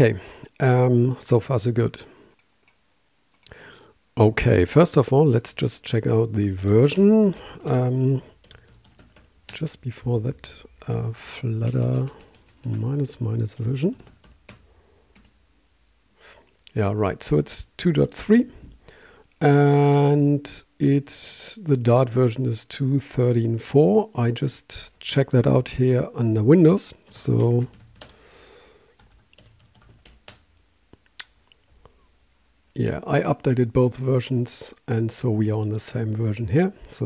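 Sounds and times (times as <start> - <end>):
computer keyboard keystrokes: 8.4 - 9.6, 11.6 - 12.9, 13.5 - 15.4, 27.1 - 28.2, 29.0 - 30.4.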